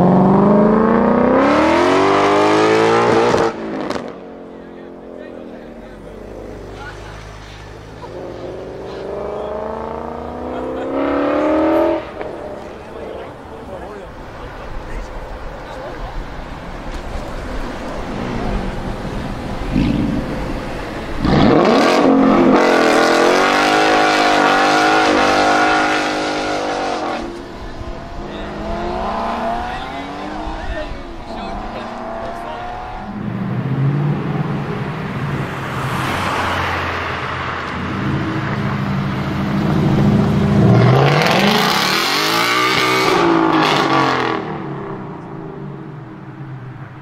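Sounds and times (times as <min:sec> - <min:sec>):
engine revving: 0:00.0 - 0:04.3, 0:08.0 - 0:13.1, 0:18.0 - 0:37.0, 0:37.7 - 0:45.1
cars driving past: 0:00.0 - 0:47.0.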